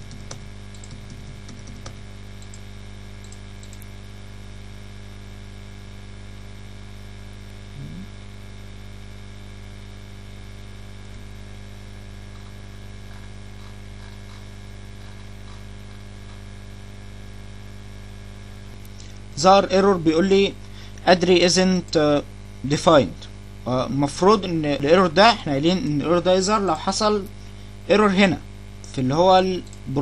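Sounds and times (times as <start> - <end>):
electrical mains hum: 0.0 - 30.0
short low blip: 7.8 - 8.2
faint static hiss: 16.8 - 30.0.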